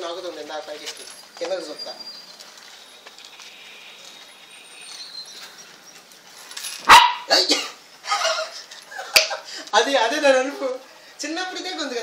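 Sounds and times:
dog barking: 6.8s - 7.3s.

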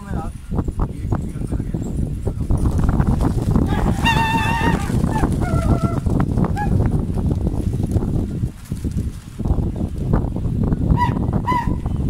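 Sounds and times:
pigeon wings clattering: 2.4s - 10.1s.

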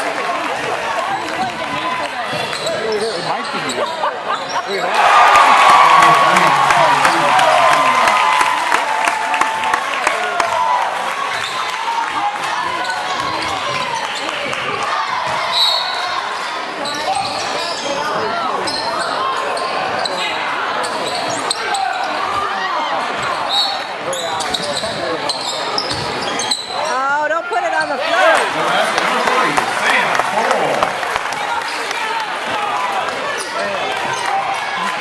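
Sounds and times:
crowd chatter with echo: 0.0s - 35.0s
sneaker squeaks: 2.3s - 4.9s, 15.2s - 16.1s, 16.8s - 22.4s, 23.2s - 27.1s.

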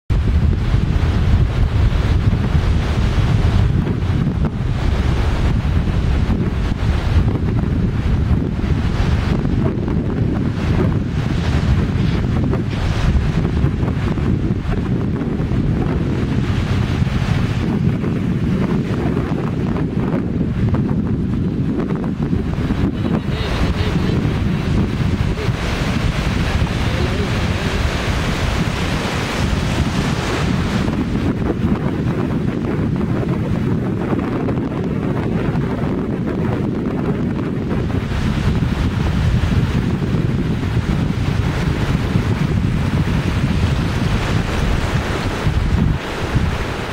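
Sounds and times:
wind buffeting microphone: 0.1s - 46.9s
small waves breaking on beach: 0.2s - 46.9s.

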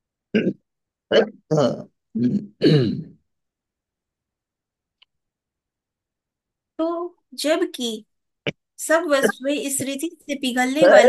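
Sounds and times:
man clearing his throat: 0.4s - 3.2s.

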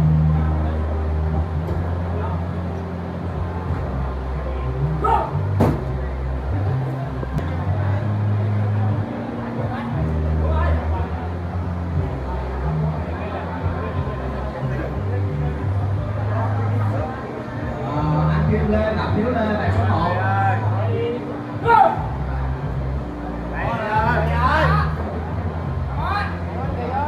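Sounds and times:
sharp knock: 5.6s - 5.9s.

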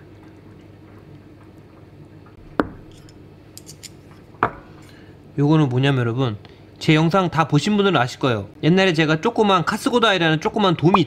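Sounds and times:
ceramic bowl knock on board: 2.6s - 2.9s.

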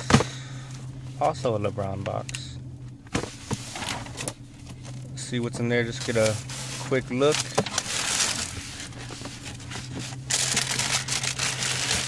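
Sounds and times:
tissue paper crinkling: 7.8s - 12.0s.

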